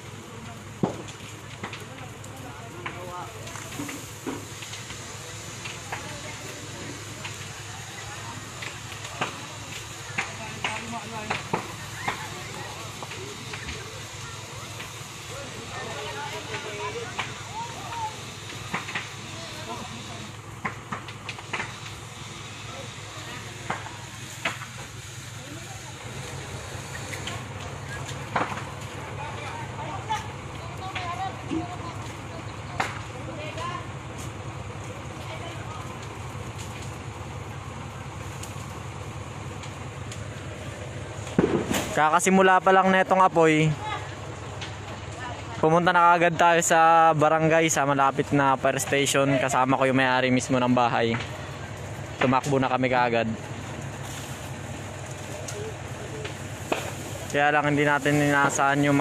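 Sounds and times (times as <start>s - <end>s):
fire cracking and popping: 0.0s - 59.0s
fire rushing noise: 0.0s - 59.0s.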